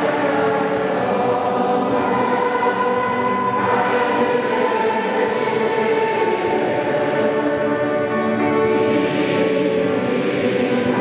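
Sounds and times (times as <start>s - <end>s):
congregation singing: 0.0s - 11.0s.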